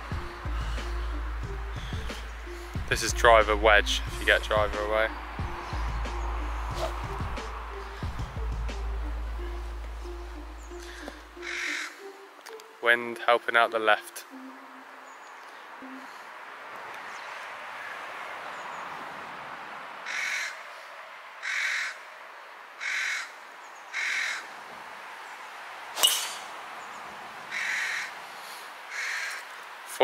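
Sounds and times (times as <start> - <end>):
bird calling: 0.0 - 2.8, 5.4 - 12.9, 20.1 - 20.6, 21.4 - 22.0, 22.8 - 24.5, 26.0 - 29.6
golf club striking ball: 26.0 - 26.6.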